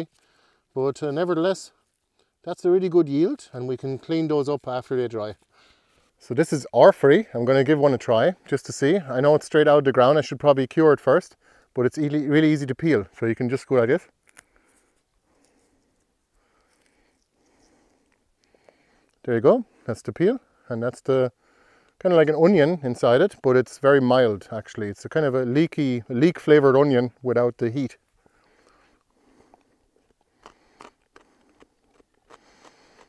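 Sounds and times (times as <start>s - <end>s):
chewing crunches: 28.1s - 33.0s
mouth clicks: 28.2s - 33.0s.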